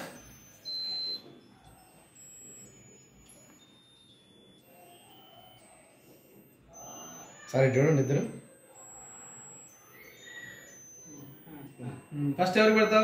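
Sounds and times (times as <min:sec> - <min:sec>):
high-pitched electronic beep: 0:00.0 - 0:13.0.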